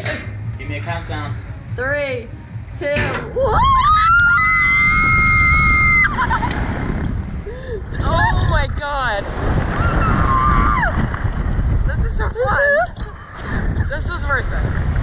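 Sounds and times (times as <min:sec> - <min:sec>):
wind rushing across microphone: 0:00.0 - 0:15.0
whooping yells: 0:03.4 - 0:06.2, 0:09.8 - 0:11.0
people screaming: 0:03.4 - 0:06.3, 0:09.8 - 0:11.0.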